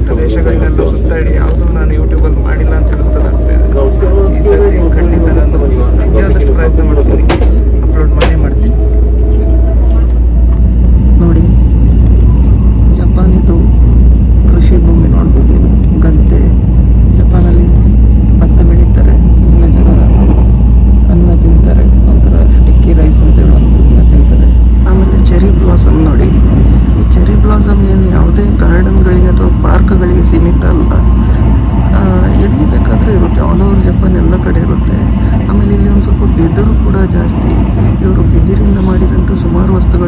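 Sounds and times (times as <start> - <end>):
indistinct voices: 0.0 - 40.0
train rumble inside carriage: 0.0 - 40.0.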